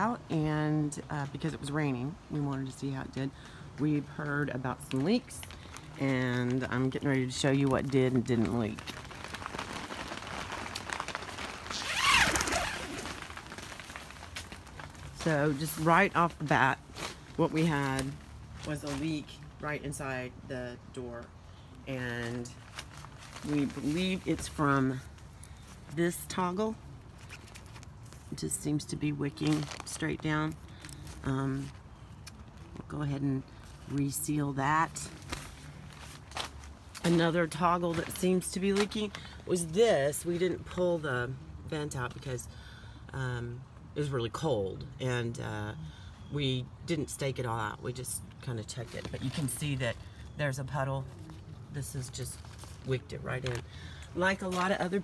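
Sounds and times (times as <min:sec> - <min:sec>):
rustling inside a nylon tent: 0:00.0 - 0:55.0
nylon tent flap rustling: 0:04.9 - 0:19.4, 0:22.0 - 0:25.9, 0:29.3 - 0:31.8, 0:34.7 - 0:39.8.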